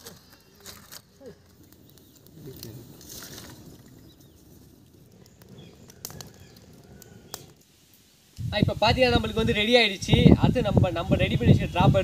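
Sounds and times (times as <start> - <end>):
twig fire crackling: 0.0 - 12.0.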